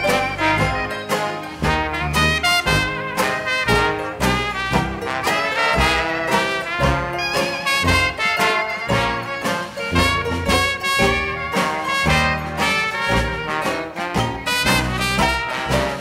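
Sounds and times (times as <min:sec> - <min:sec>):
banjo: 0:00.0 - 0:16.0
clarinet: 0:00.0 - 0:16.0
drums: 0:00.0 - 0:16.0
trombone: 0:00.0 - 0:16.0
trumpet: 0:00.0 - 0:16.0
tuba: 0:00.0 - 0:16.0.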